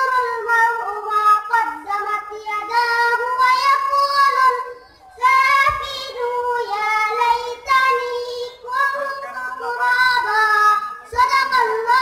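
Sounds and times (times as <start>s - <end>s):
boy chanting into a microphone: 0.0s - 12.0s.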